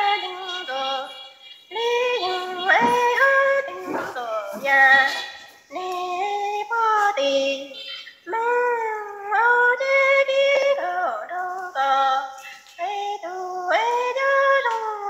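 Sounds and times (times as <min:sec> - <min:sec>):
woman singing unaccompanied: 0:00.0 - 0:15.0.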